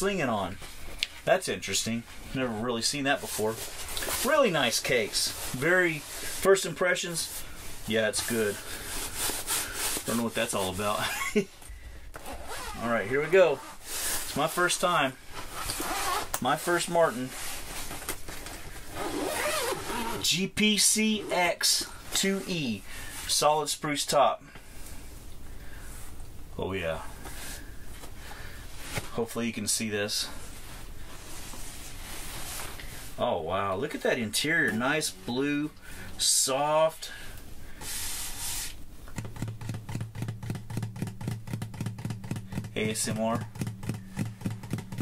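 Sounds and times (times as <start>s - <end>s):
zipper being pulled open: 12.2s - 12.9s, 15.5s - 16.4s, 18.9s - 20.2s
hands rubbing guitar and bag: 37.8s - 45.0s
low steady ringing note: 40.3s - 45.0s.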